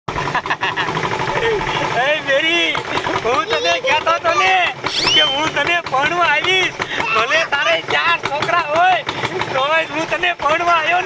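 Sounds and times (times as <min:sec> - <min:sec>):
vehicle engine running: 0:00.1 - 0:11.0
people talking: 0:01.4 - 0:11.0.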